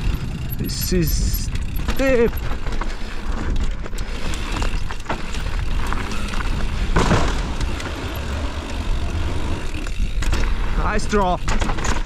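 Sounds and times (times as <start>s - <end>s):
bike rattling: 0.0s - 12.0s
bike tyres on gravel trail: 0.0s - 12.0s.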